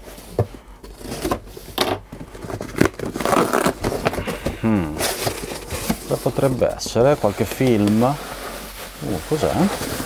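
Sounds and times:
cardboard flaps rasping open: 2.2 - 6.4
knife cutting packing tape: 2.6 - 4.0.

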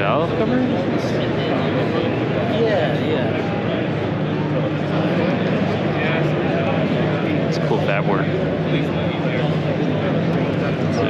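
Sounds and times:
babble of distant voices: 0.0 - 11.0.

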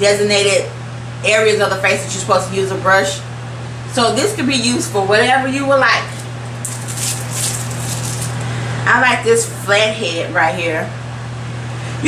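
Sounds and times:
steady low hum: 0.0 - 12.0
makeup brushes rustling: 6.1 - 8.6.

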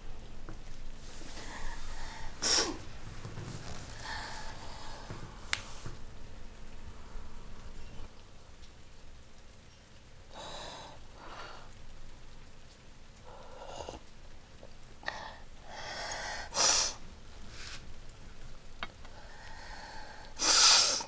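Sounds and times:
loud sharp sniffs: 1.3 - 2.8, 16.5 - 17.8, 20.4 - 21.0
woman sniffing and gasping: 19.6 - 21.0.

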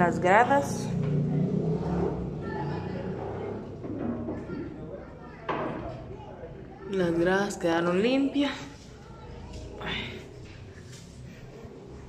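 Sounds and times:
vehicle engine rumble: 0.0 - 4.4.

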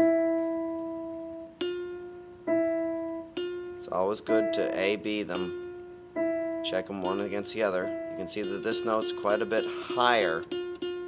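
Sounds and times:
nylon guitar string note: 0.0 - 11.0
piano note: 0.0 - 11.0.

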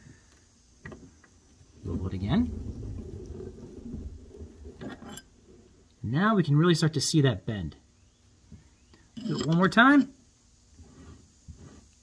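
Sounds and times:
ring roller grinding rumble: 1.7 - 6.5.

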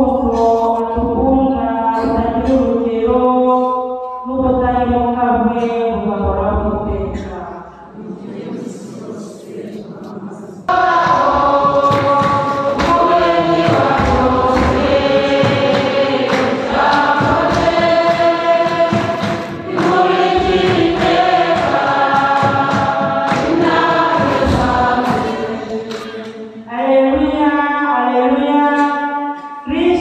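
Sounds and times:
choir singing a hymn: 7.9 - 26.7.

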